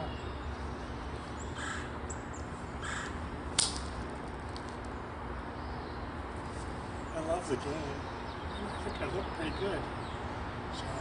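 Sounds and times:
bird calls: 0:00.0 - 0:03.3, 0:04.9 - 0:11.0
golf club striking ball: 0:03.5 - 0:04.0.

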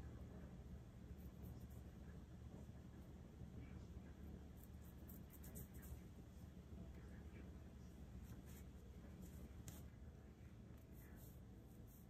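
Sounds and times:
low steady hum: 0:00.0 - 0:12.0
fingers rustling hair: 0:04.4 - 0:06.2, 0:08.1 - 0:10.0, 0:10.8 - 0:12.0.

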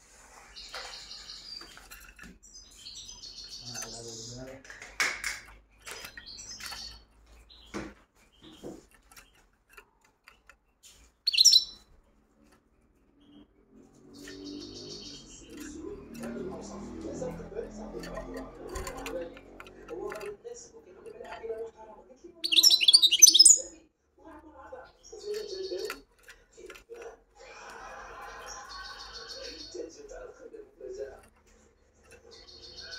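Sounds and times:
finch song: 0:00.0 - 0:23.8, 0:24.5 - 0:32.9
finch chirps and twitters: 0:00.1 - 0:09.5, 0:10.2 - 0:21.8, 0:22.4 - 0:23.8, 0:24.8 - 0:27.1, 0:27.8 - 0:32.9
goldfinch twittering: 0:11.2 - 0:11.9, 0:14.1 - 0:16.9, 0:22.4 - 0:23.7.

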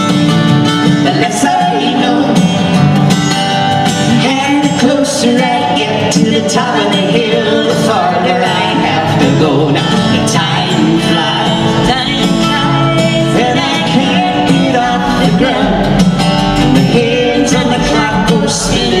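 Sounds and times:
acoustic guitars playing folk song: 0:00.0 - 0:19.0
person singing: 0:00.8 - 0:19.0.

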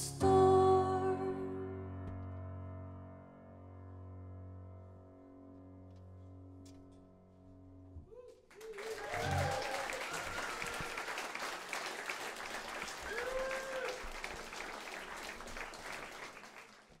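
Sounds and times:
audience applauding: 0:08.4 - 0:17.0
shouted cheers: 0:08.5 - 0:11.8, 0:12.6 - 0:14.5.

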